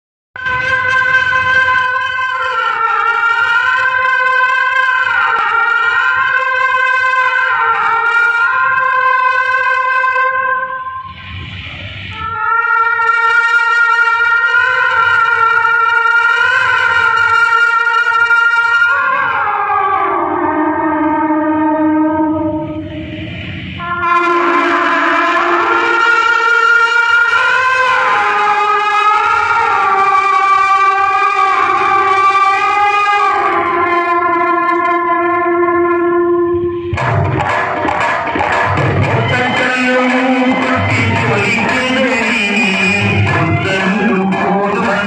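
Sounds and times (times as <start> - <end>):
horn loudspeakers blaring steady note: 0.4 - 37.4, 38.5 - 45.0.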